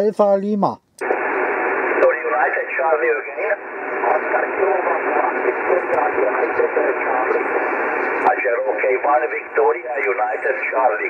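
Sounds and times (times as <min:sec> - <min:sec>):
muffled radio voice: 0:01.0 - 0:11.0
radio static hiss: 0:01.0 - 0:11.0.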